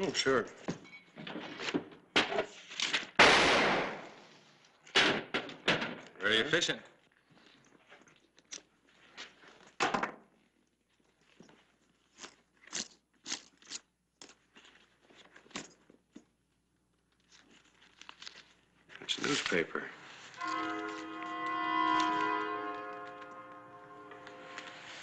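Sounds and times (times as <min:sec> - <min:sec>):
newspaper rustling and crinkling: 0:17.0 - 0:21.1.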